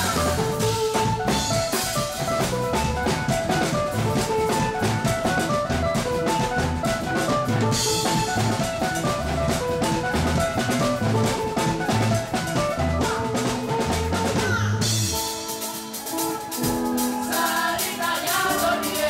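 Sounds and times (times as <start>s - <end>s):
live band playing dance music: 0.0s - 19.0s.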